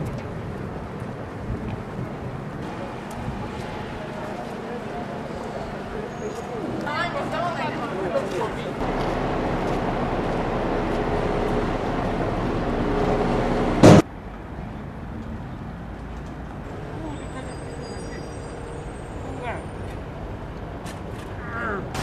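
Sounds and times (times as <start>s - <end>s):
city traffic: 0.0s - 22.0s
motor vehicle running: 8.7s - 14.0s
loud sharp bang: 13.8s - 14.0s.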